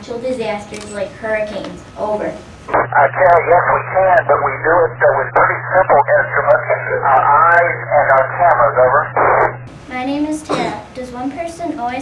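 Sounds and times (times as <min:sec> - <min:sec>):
steady low hum: 0:00.0 - 0:12.0
man speaking over radio: 0:02.7 - 0:09.6.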